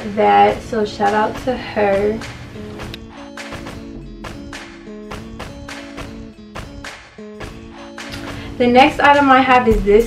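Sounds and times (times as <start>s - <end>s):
music with held chords: 0.0s - 10.0s
regular percussion hits: 1.1s - 8.6s.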